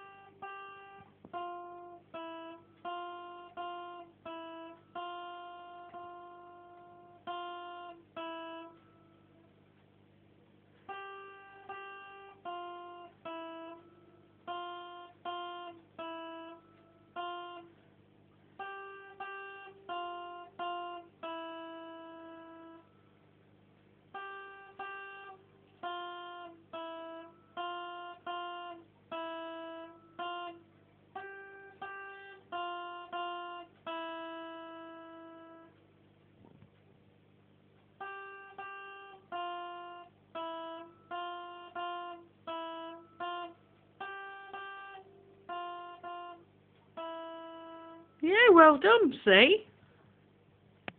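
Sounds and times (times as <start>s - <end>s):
acoustic guitar plucked melody: 0.0s - 9.4s, 10.7s - 22.9s, 24.2s - 49.2s.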